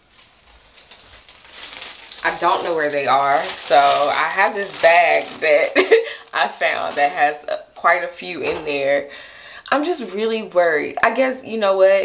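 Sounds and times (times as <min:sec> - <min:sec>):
plastic bag rustling: 0:00.0 - 0:09.0.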